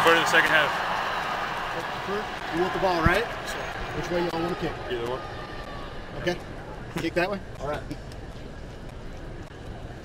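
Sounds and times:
indoor stadium room rumble: 0.0 - 10.0.

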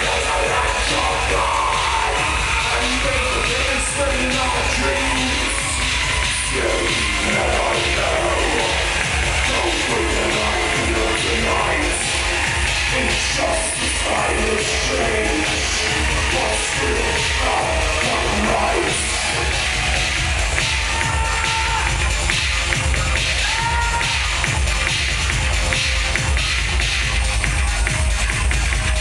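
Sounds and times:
loud live music with heavy bass: 0.0 - 29.0.

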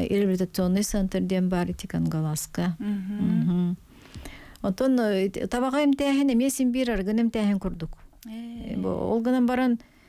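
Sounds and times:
woman speaking: 0.0 - 3.8, 4.6 - 9.8.

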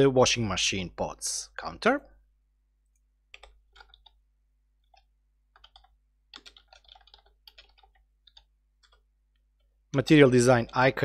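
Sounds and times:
faint computer keyboard typing: 2.9 - 4.2, 4.8 - 9.8.

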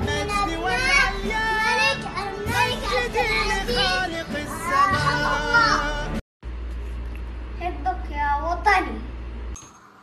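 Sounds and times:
young boy singing: 0.0 - 6.2.

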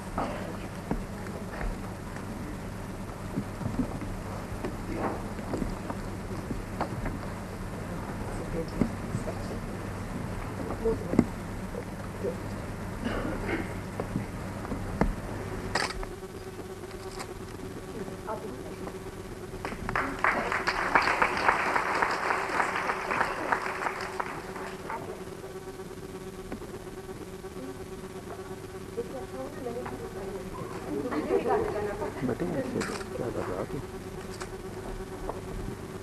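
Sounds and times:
steady buzzing hum: 0.0 - 36.0.

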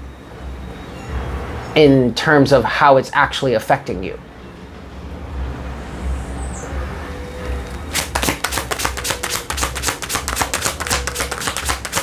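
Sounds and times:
cards being shuffled: 7.9 - 12.0.

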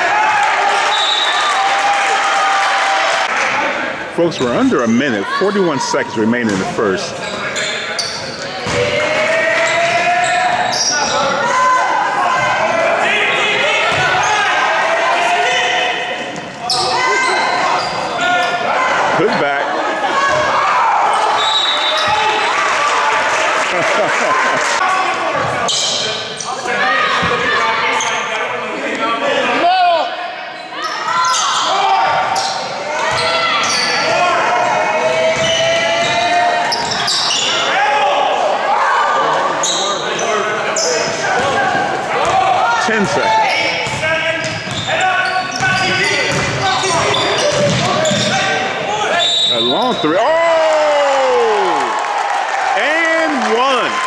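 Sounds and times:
people shouting and chattering: 0.0 - 54.0
basketballs bouncing on hardwood: 45.6 - 48.3.

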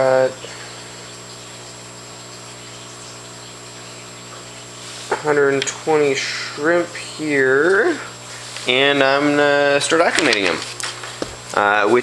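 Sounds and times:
steady low hum: 0.0 - 12.0
thin high whine: 0.0 - 12.0.

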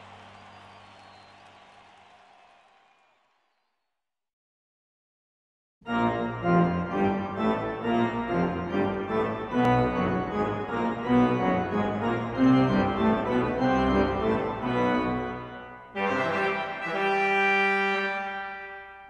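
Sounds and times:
organ music: 5.9 - 19.0.

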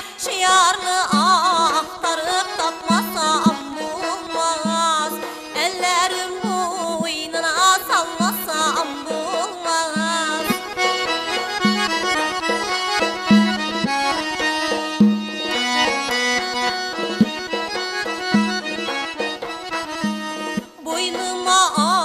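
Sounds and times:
person singing: 0.0 - 10.7, 20.8 - 22.0
accordion playing chords: 0.0 - 22.0
frame drum beat: 14.7 - 15.9.

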